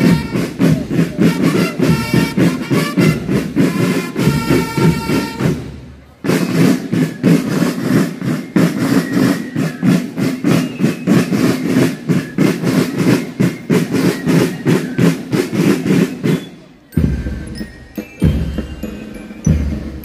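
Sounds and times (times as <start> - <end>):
marching drums: 0.0 - 20.0.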